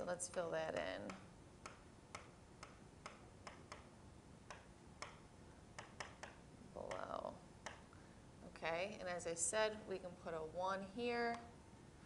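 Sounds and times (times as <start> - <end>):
stylus tapping whiteboard: 0.2 - 7.9.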